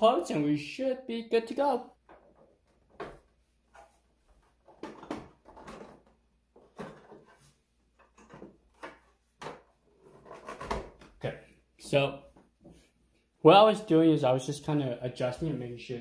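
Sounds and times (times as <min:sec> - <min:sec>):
hard plastic parts knocking: 0:04.6 - 0:07.3.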